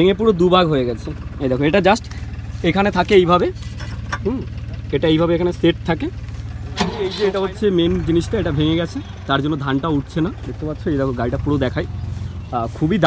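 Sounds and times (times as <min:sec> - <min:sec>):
diesel engine idling: 0:00.0 - 0:13.0
man talking: 0:04.2 - 0:13.0.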